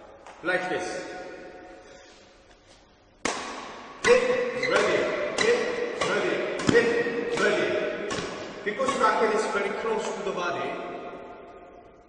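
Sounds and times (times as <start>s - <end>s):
racket striking shuttlecock: 3.2s - 10.2s.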